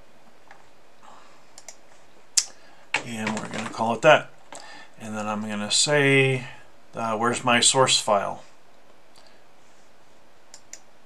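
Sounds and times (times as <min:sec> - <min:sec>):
steady low hiss: 0:00.0 - 0:11.0
computer mouse clicks: 0:01.6 - 0:01.8, 0:10.5 - 0:10.9.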